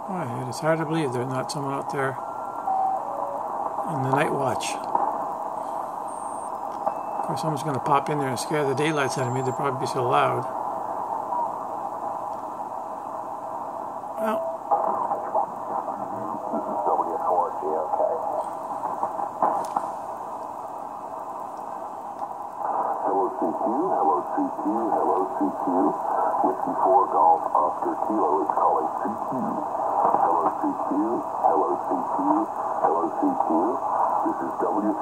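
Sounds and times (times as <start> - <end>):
radio static hiss: 0.0 - 35.0
distant voice over radio: 14.2 - 18.5, 22.7 - 35.0.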